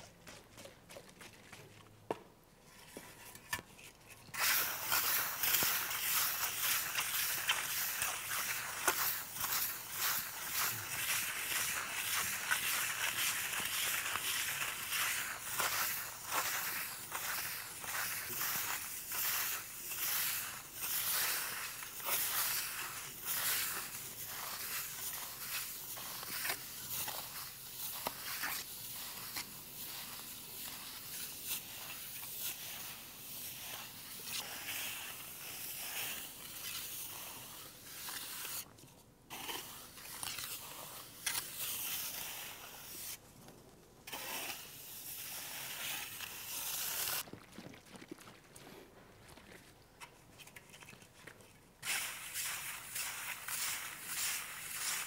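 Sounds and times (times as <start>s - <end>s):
steel float scraping plaster: 2.6s - 38.7s, 39.3s - 43.2s, 44.1s - 47.2s, 50.0s - 55.0s.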